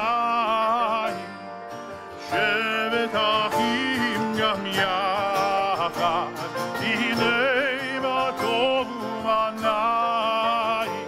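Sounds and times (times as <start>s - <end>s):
strummed acoustic guitar: 0.0s - 11.0s.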